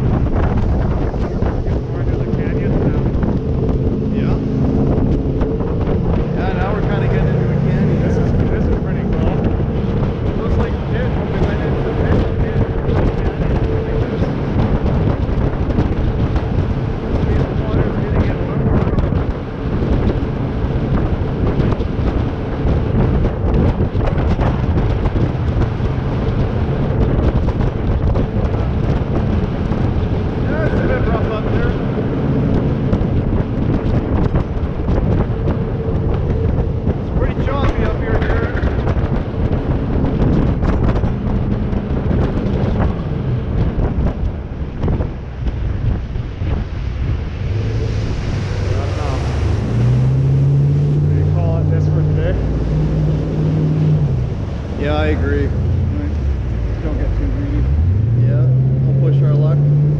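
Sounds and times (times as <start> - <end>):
boat engine drone: 0.0 - 59.9
water rushing past hull: 0.0 - 59.9
wind buffeting microphone: 0.0 - 59.9.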